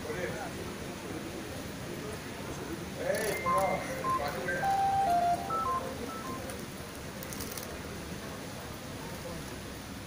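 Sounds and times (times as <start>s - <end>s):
electronic beep melody: 3.3s - 6.5s.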